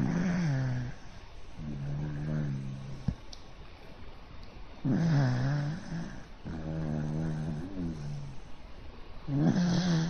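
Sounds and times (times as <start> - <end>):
dog snoring: 0.0 - 3.1, 4.8 - 8.5, 9.3 - 10.0.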